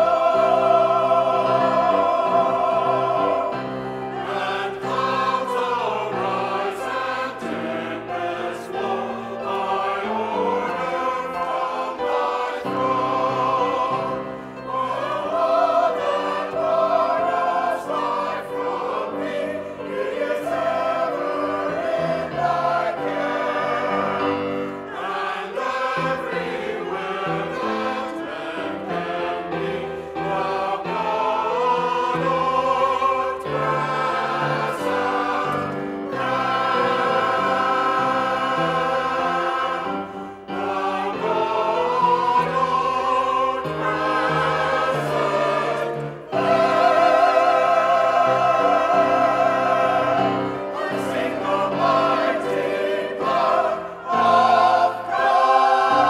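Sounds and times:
mixed choir singing: 0.0 - 56.0.

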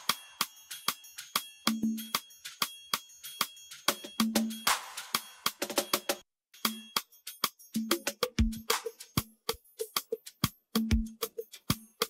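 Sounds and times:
drum and percussion hits: 3.8 - 12.0.

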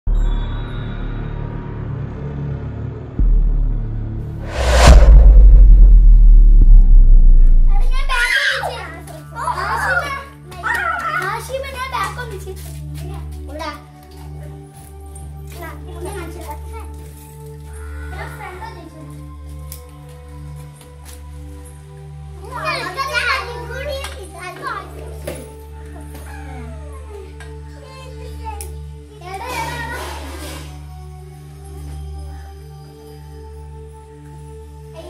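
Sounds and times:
steady low hum: 4.4 - 8.2
children talking and calling out: 7.9 - 13.9, 17.6 - 19.3, 22.4 - 25.2, 25.8 - 30.3.

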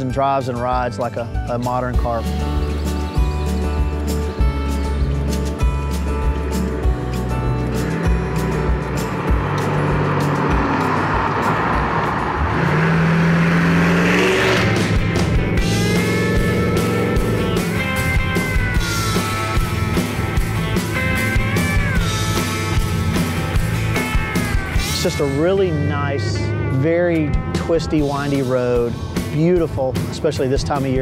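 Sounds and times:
background music with steady beat: 0.0 - 31.0
truck engine driving past: 6.1 - 29.3.

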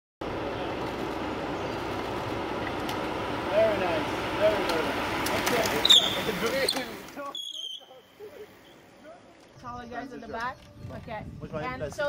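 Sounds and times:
low rumble and hiss: 0.2 - 7.2.

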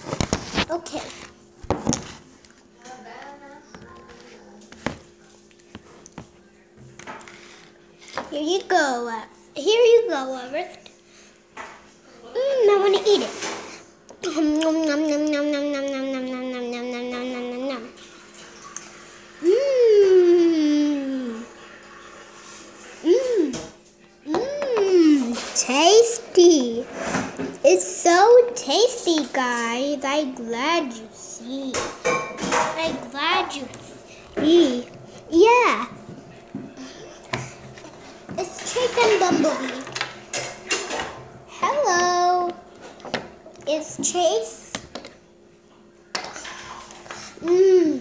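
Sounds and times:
child humming: 14.2 - 18.0, 19.4 - 21.6, 23.0 - 23.6, 47.4 - 48.0
child's wordless swooping mmm: 19.4 - 21.5
steady low hum: 22.4 - 48.0.

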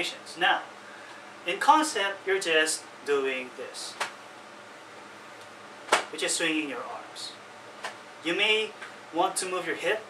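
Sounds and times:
arm slapping against body: 3.9 - 4.2, 5.8 - 6.2, 7.8 - 8.0.

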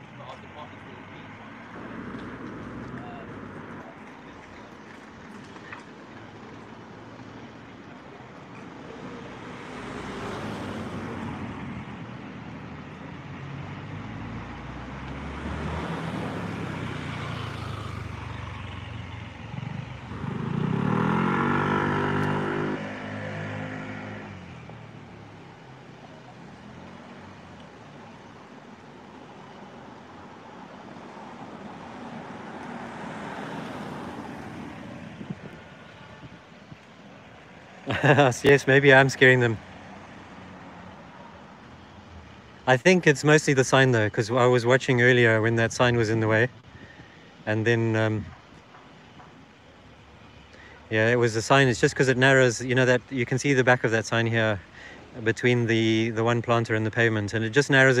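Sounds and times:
cars driving past: 0.0 - 58.0
engine accelerating: 13.8 - 25.6.

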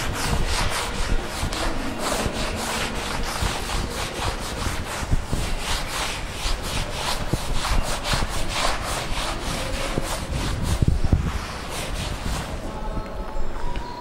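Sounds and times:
duster rubbing on chalkboard: 0.0 - 13.5.

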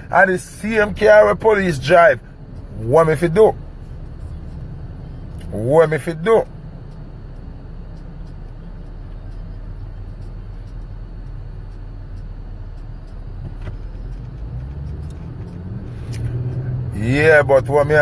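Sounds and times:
car cabin rumble: 0.0 - 18.0.

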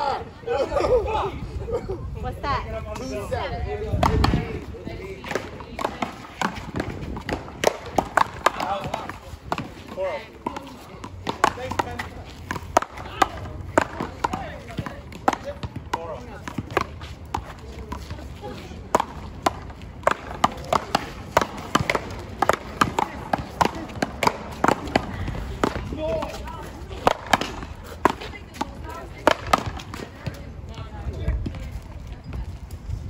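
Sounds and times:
voices in background: 0.0 - 33.0
paddles smacking rubber ball: 5.2 - 18.2, 18.9 - 30.4
ball striking concrete wall: 5.2 - 30.4.

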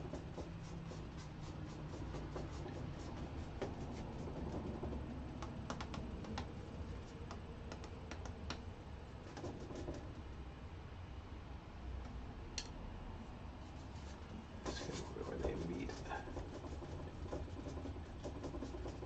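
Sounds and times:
brush strokes on canvas: 0.0 - 4.7, 13.5 - 19.0
low steady hum: 0.0 - 19.0
light taps: 4.6 - 6.5.

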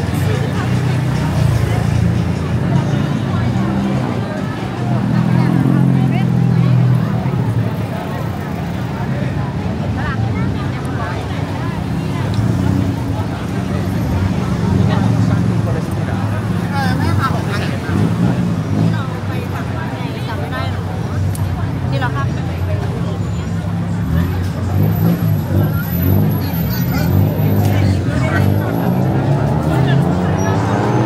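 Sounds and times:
many people talking: 0.0 - 31.0
vehicle engines passing: 0.0 - 31.0.

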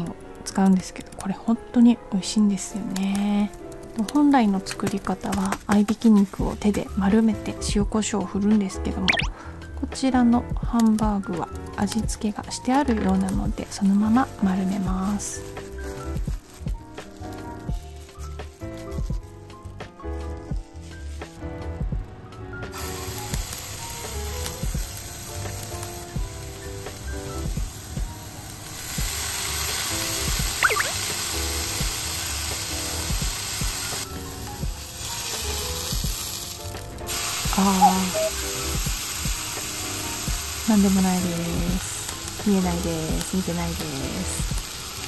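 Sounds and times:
background music: 0.0 - 45.0
frying pan sizzling: 2.6 - 8.1, 9.1 - 45.0.

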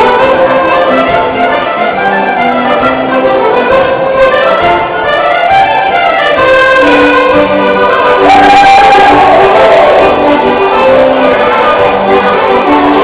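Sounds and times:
folk band playing dance tune: 0.0 - 13.0.

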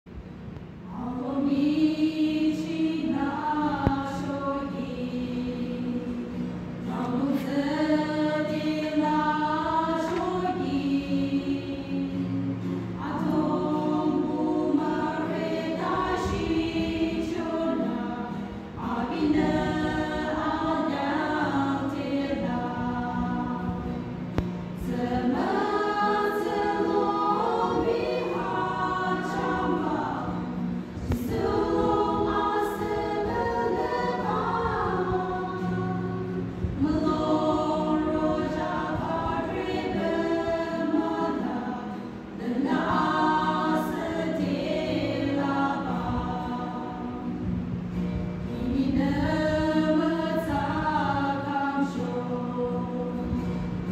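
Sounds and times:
women's choir singing a hymn: 0.8 - 53.9.

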